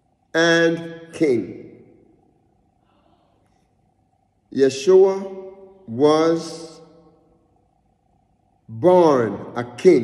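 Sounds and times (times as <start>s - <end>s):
person speaking: 0.3s - 3.6s, 4.5s - 7.2s.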